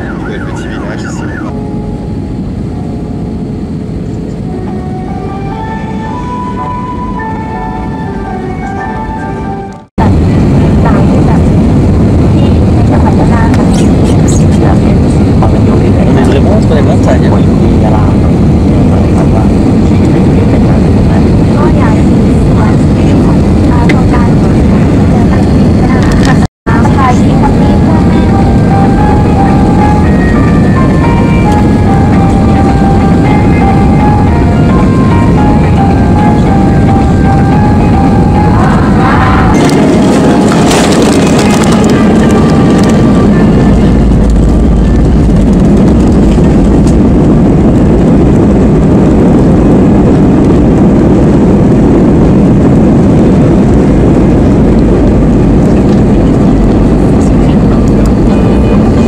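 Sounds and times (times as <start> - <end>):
jet airliner cabin noise: 0.0 - 59.0.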